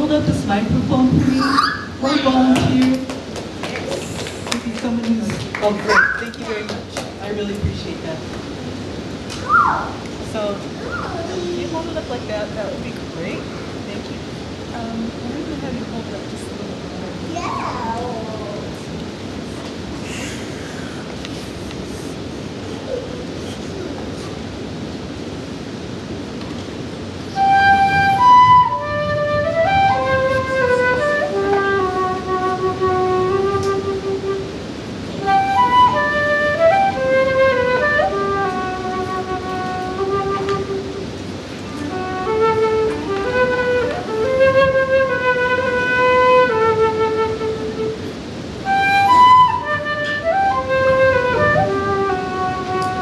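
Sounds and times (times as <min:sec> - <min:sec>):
flute slow melody: 0:09.4 - 0:10.0, 0:27.2 - 0:53.0.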